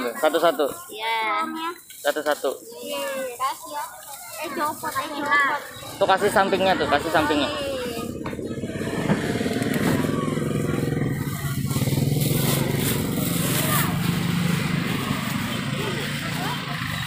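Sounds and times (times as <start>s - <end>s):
motorcycle engine running: 5.6s - 17.0s.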